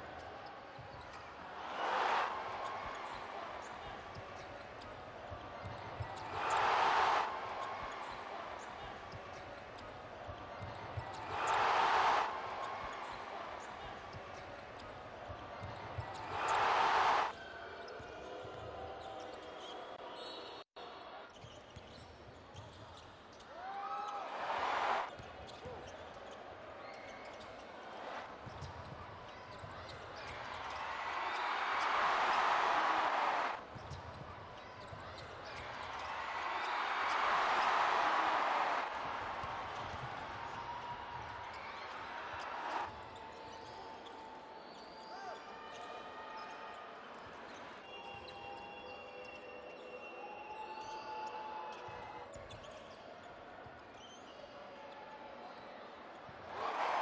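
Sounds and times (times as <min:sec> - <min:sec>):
crowd cheering: 0:00.0 - 0:21.4, 0:23.4 - 0:52.9, 0:56.1 - 0:57.0
crowd noise: 0:00.0 - 0:57.0.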